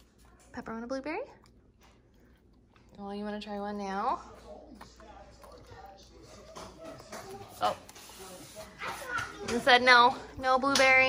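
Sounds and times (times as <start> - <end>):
faint background voices: 3.1 - 11.0.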